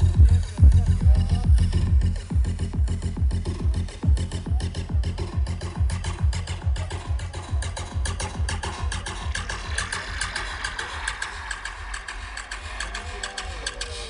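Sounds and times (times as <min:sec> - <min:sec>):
driving kick drum: 0:00.0 - 0:10.7
electronic dance music over pa: 0:00.0 - 0:14.0.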